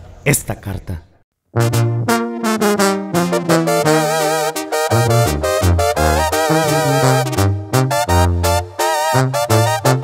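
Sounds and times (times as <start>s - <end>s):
brass band playing: 1.6s - 10.0s.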